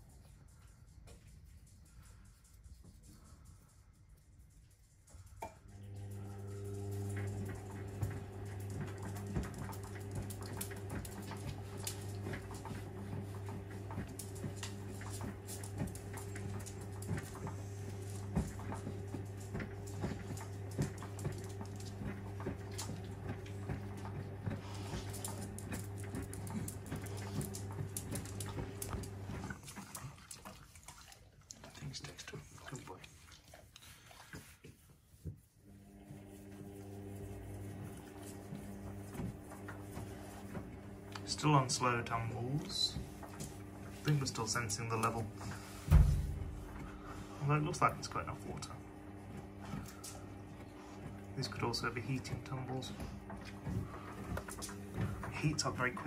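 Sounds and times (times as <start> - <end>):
washing machine hum: 0.0 - 56.0
laundry sloshing in washing machine drum: 6.0 - 56.0.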